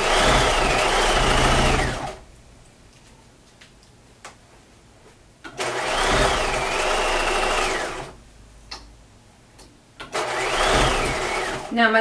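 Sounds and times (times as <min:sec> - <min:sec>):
sewing machine motor whine: 0:00.0 - 0:02.2, 0:05.6 - 0:08.2, 0:10.1 - 0:11.7.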